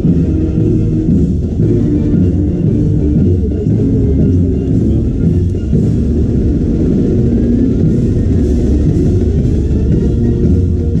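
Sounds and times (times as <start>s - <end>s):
heavy drums: 0.0s - 11.0s
marching band playing: 0.0s - 11.0s.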